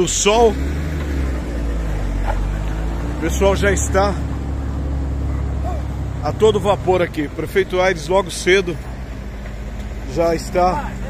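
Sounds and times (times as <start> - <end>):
truck diesel engine droning: 0.0 - 11.0.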